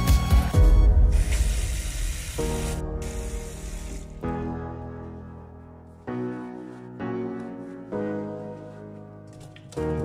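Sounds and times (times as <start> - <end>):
background music with sustained notes: 0.0 - 10.0.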